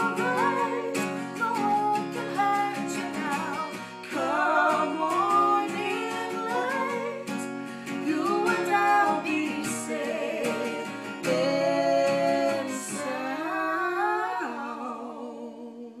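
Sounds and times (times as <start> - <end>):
strummed acoustic guitar: 0.0 - 14.7
man and woman singing duet: 0.0 - 16.0.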